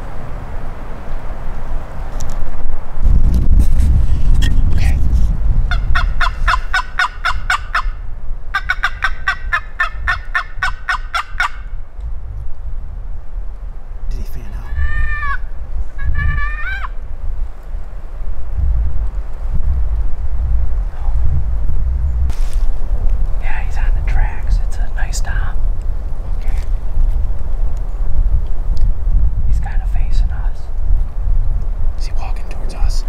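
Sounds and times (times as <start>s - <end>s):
turkey call notes: 5.7s - 11.8s, 14.1s - 17.0s
turkey call yelps: 5.7s - 11.8s, 14.7s - 17.0s.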